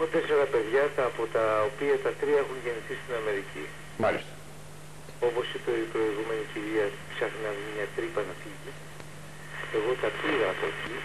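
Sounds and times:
man talking over telephone: 0.0 - 4.3, 5.2 - 8.8, 9.7 - 11.0.

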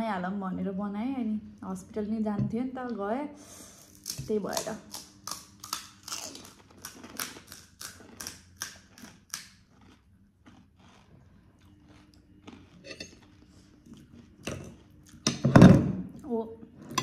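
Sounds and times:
crunchy food being chewed: 4.0 - 15.3.

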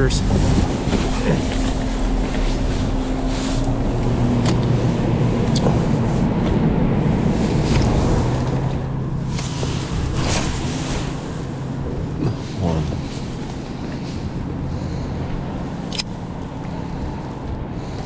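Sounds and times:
boat engine droning: 0.0 - 18.0.

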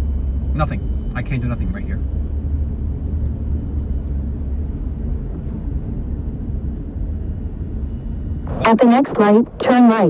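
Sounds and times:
car engine rumble: 0.0 - 10.0.

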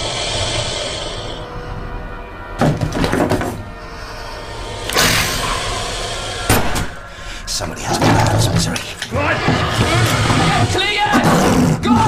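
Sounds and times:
high hissing horror music: 0.0 - 12.0.

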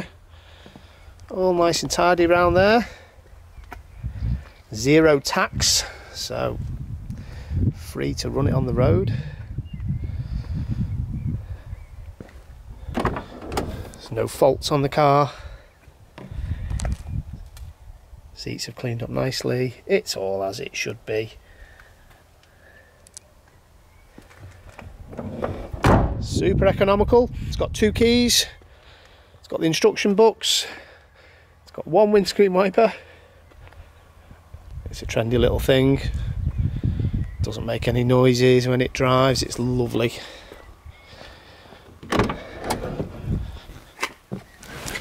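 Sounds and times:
wind and handling rumble on microphone: 1.2 - 18.4, 24.3 - 28.6, 33.6 - 41.2, 41.8 - 45.0
car door latch clunk: 12.9 - 14.0, 25.1 - 26.2, 42.0 - 43.2
car door shutting thud: 25.2 - 26.2.

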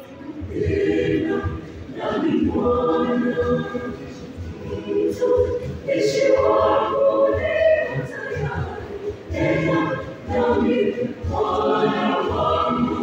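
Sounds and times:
youth choir singing: 0.0 - 13.0.

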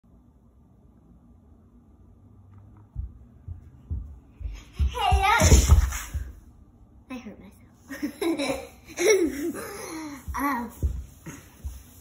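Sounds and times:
young girl laughing: 7.9 - 11.4.

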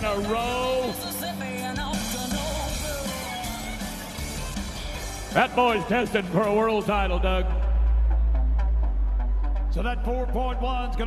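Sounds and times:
rock background music: 0.0 - 11.0.

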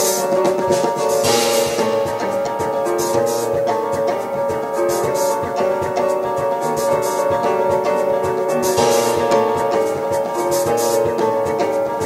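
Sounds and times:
double bass: 0.0 - 12.0
sustained keyboard chords: 0.0 - 12.0
cymbal wash: 0.7 - 5.4, 8.6 - 11.4.

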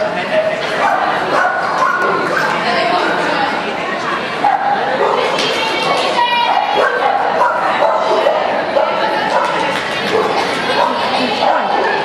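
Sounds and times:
hubbub of voices: 0.0 - 12.0
dogs barking: 0.8 - 2.6, 4.4 - 5.3, 6.4 - 12.0.

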